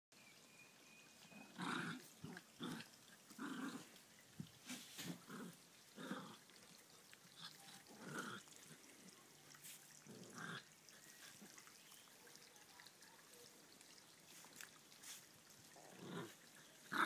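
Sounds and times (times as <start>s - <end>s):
small dogs growling: 1.3s - 4.0s, 5.0s - 11.6s, 15.7s - 17.0s.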